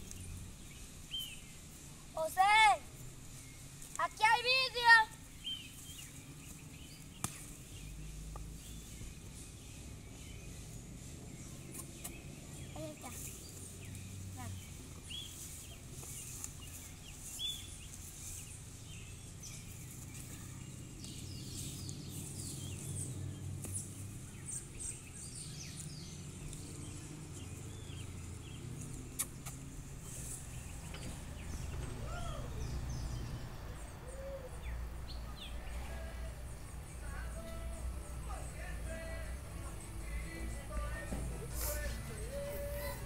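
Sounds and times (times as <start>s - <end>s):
birds chirping: 0.0s - 43.0s
long arching bird calls: 4.1s - 40.2s, 41.5s - 43.0s.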